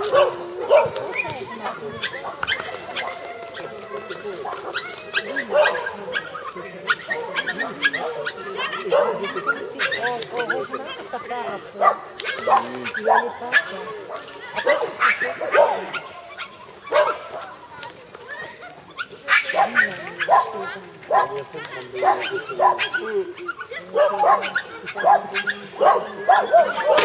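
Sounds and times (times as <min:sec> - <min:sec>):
dog barking: 0:00.0 - 0:01.1, 0:04.4 - 0:10.8, 0:11.8 - 0:17.6, 0:19.3 - 0:27.0.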